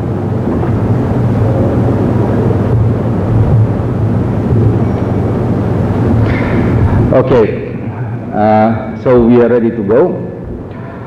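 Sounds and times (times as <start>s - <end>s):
low rumble of room noise: 0.0s - 11.0s.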